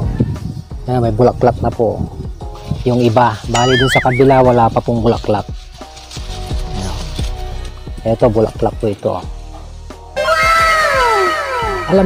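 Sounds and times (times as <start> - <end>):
cat meowing: 3.6 - 4.3.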